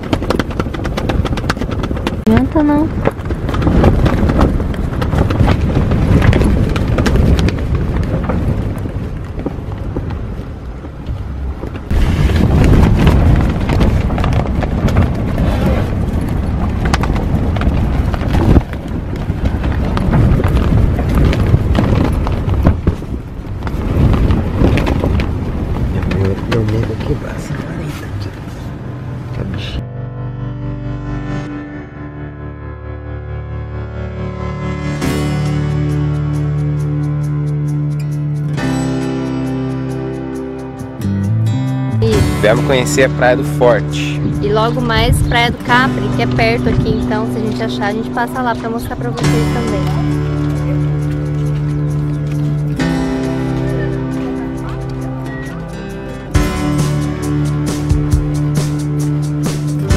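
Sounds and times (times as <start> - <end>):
tent fabric flapping: 0.0 - 28.8, 48.7 - 59.9
strong gusting wind: 0.0 - 29.8, 34.0 - 59.9
soft music: 29.0 - 59.9.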